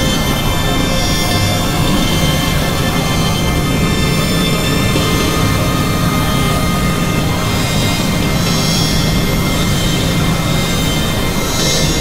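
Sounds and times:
electronic drone music: 0.0 - 12.0.

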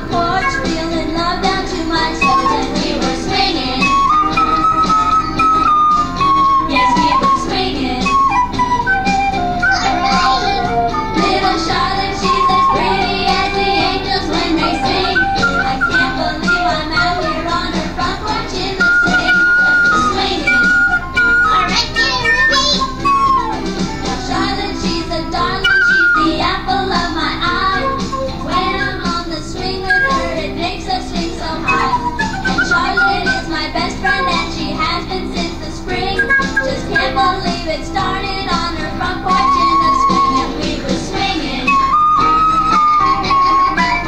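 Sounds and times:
small wind instrument melody: 0.0 - 1.1, 1.8 - 26.8, 27.5 - 29.2, 29.8 - 30.6, 31.4 - 34.8, 36.1 - 38.2, 39.2 - 40.6, 41.2 - 44.0
backing music track: 0.0 - 44.0
end-blown flute: 2.2 - 2.9, 3.7 - 11.0, 12.0 - 14.0, 14.6 - 17.7, 18.6 - 23.8, 25.4 - 26.4, 27.5 - 29.2, 29.8 - 30.4, 31.6 - 34.5, 36.1 - 37.5, 39.3 - 40.6, 41.4 - 44.0.

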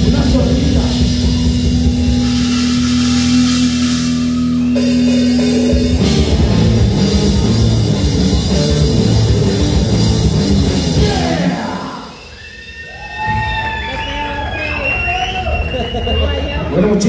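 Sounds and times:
rock band playing: 0.0 - 12.4.

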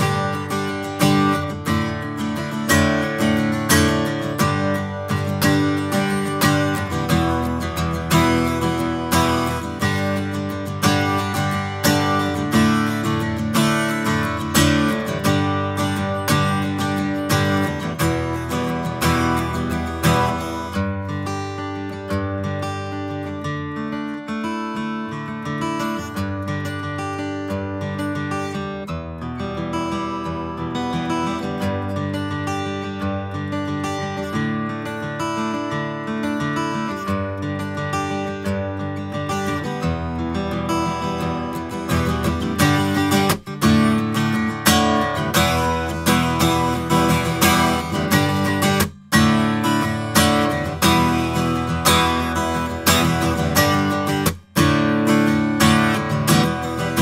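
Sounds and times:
acoustic guitar strummed: 0.0 - 57.0.

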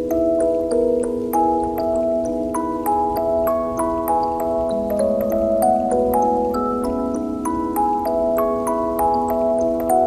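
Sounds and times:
music box playing slow melody: 0.0 - 10.0.

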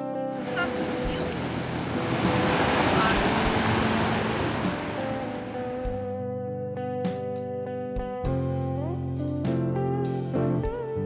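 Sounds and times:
ocean surf rushing: 0.4 - 6.0.

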